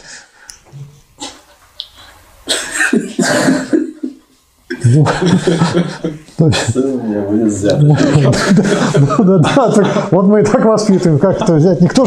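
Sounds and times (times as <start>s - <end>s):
person coughing: 2.4s - 4.1s.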